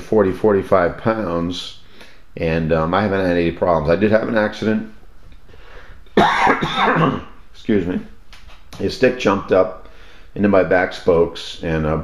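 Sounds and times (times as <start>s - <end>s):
man coughing: 6.2s - 7.4s.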